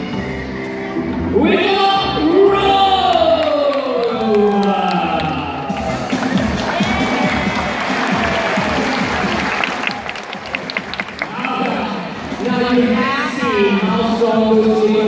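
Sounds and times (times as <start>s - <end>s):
audience applauding and cheering: 3.0s - 12.9s.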